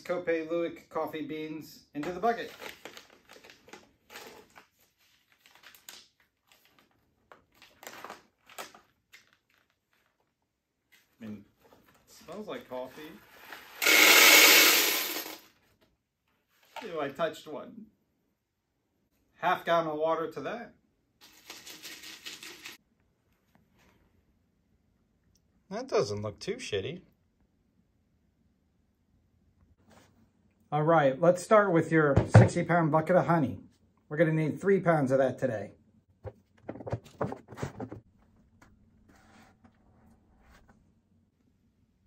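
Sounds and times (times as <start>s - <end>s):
plastic bag crinkling and rustling: 2.1s - 10.3s.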